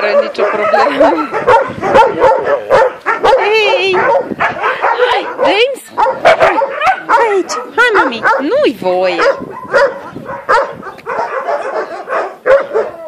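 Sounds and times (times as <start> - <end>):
dogs yipping and whining: 0.0 - 8.6, 9.2 - 13.0
dogs barking: 0.0 - 13.0.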